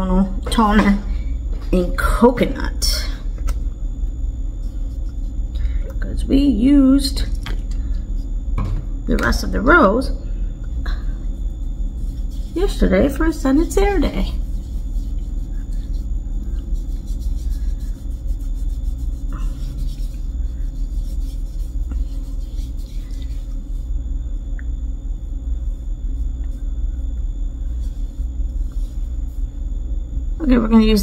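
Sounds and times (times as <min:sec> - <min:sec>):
steady low rumble: 0:00.0 - 0:31.0
cotton pad rubbing on skin: 0:04.5 - 0:05.4, 0:10.9 - 0:24.0, 0:25.2 - 0:29.7.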